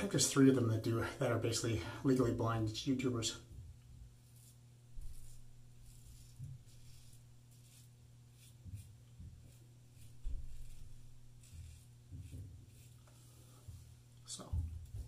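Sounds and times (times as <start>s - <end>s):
low steady hum: 0.0s - 15.0s
razor scraping stubble: 4.1s - 13.9s.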